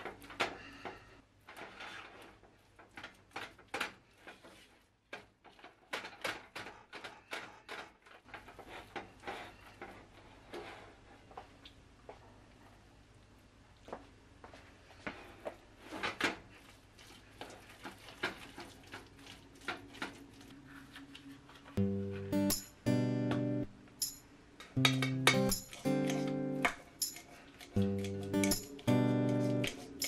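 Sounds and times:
spatula stirring beans in pan: 14.5 - 21.8, 24.7 - 30.0
strummed acoustic guitar: 21.8 - 24.1, 24.8 - 27.0, 27.8 - 30.0.

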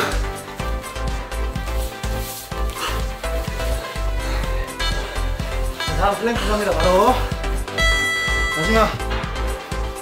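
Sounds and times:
electronic dance music: 5.8 - 9.1.

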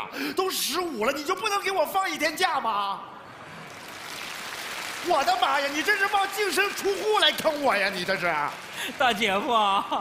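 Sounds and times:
studio audience applauding: 3.4 - 9.8.

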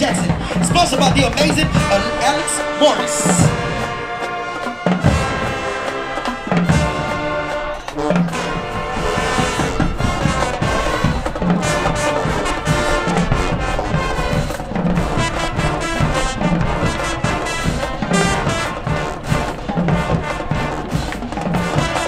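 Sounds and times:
brass section playing: 0.0 - 22.0
drum hits: 0.0 - 22.0.

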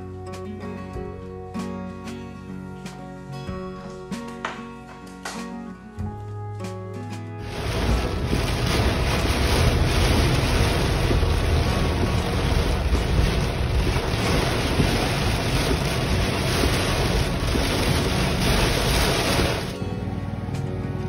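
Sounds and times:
heavy rain on car roof: 7.4 - 19.8.

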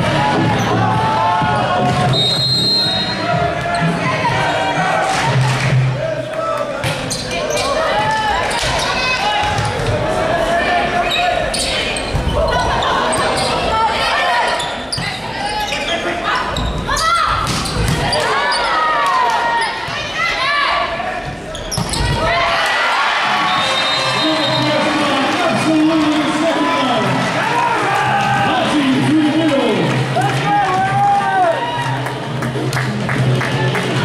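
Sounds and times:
crowd noise: 0.0 - 34.0
players calling: 0.3 - 31.6
sneakers squeaking on wooden court: 6.9 - 7.9, 11.1 - 13.7, 14.4 - 18.7, 21.2 - 22.2.

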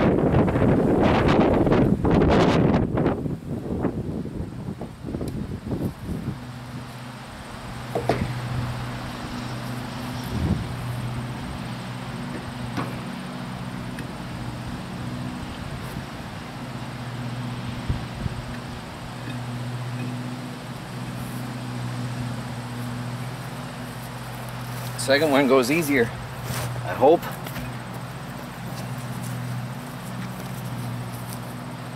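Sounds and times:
wheel knocking onto hub: 12.3 - 13.2.

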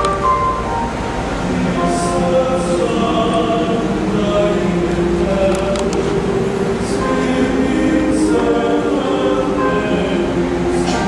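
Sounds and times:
male choir singing: 1.4 - 11.0.

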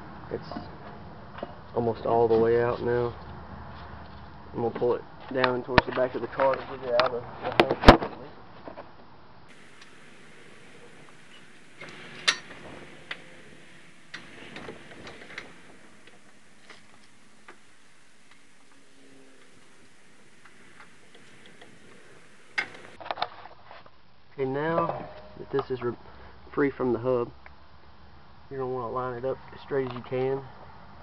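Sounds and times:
faint steady background noise: 0.0 - 31.0.

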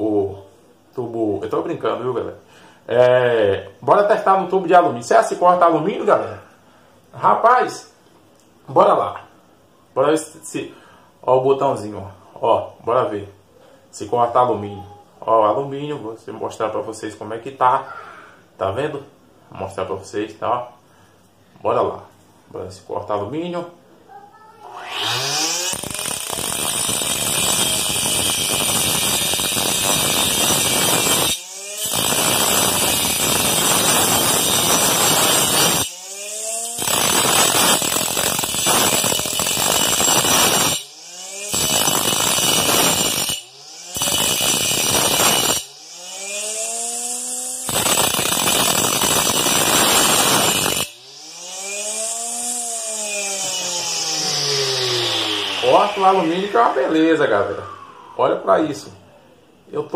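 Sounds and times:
cutting disc grinding metal tube: 24.6 - 57.8
small motor whining: 24.6 - 58.2.

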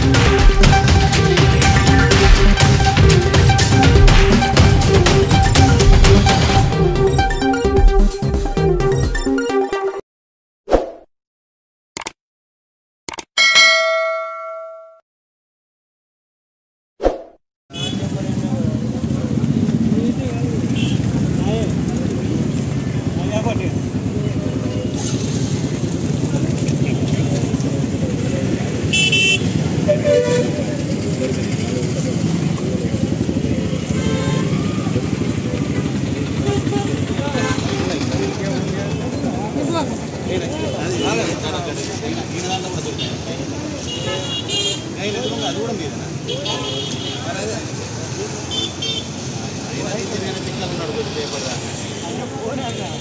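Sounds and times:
street traffic: 0.0 - 9.2, 17.7 - 53.0
bell ding: 13.4 - 15.0
motorcycle engines running: 18.0 - 43.8
people talking: 18.0 - 48.6, 49.4 - 53.0
vehicle horn tooting: 28.9 - 30.8, 33.9 - 34.9, 36.4 - 38.3.

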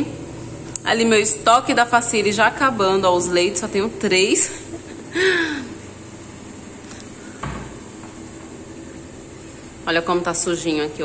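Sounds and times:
cabinet door opening: 7.4 - 7.8
knock: 7.4 - 7.8.

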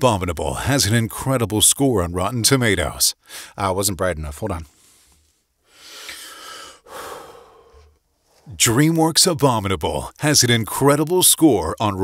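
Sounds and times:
man breathing: 3.2 - 3.6, 4.7 - 8.5.

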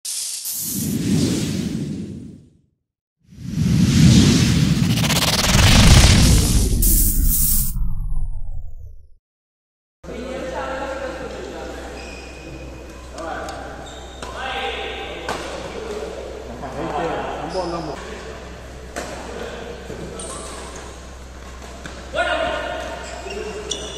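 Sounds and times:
deep rumbling whoosh: 4.0 - 9.2
bright high hiss: 6.8 - 7.8.

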